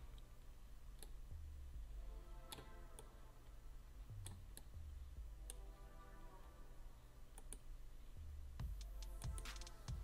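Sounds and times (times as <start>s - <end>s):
faint low hum: 0.0s - 10.0s
computer mouse clicks: 0.9s - 1.2s, 4.2s - 4.7s, 7.3s - 7.7s.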